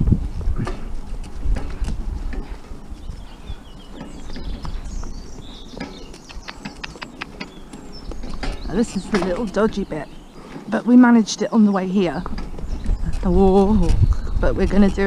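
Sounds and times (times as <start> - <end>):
steady low rumble: 0.0 - 10.4
cart and harness rattling: 0.0 - 15.0
hooves clip-clopping on dirt: 0.0 - 15.0
birds chirping: 0.4 - 15.0.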